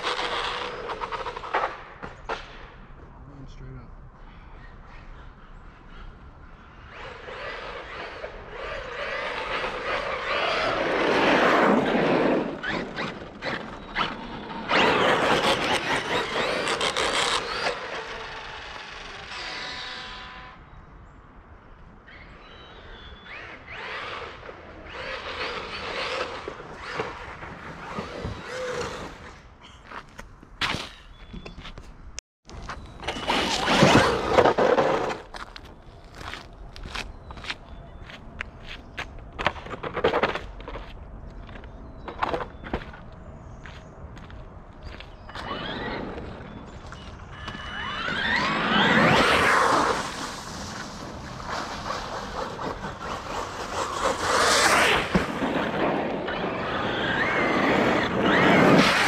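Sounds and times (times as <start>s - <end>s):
toy truck electric motor whine: 14.0s - 20.6s, 46.9s - 49.8s
tyres churning through slush: 48.3s - 55.2s.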